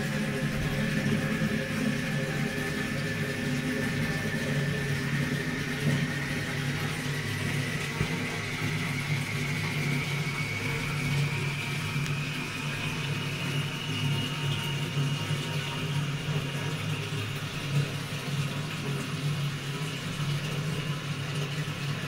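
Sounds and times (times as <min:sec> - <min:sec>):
water running through fill valve: 0:00.0 - 0:22.0.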